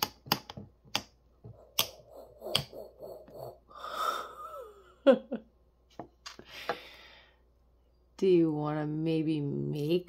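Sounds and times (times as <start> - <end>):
breathy drawn-out voice: 1.6 - 5.0.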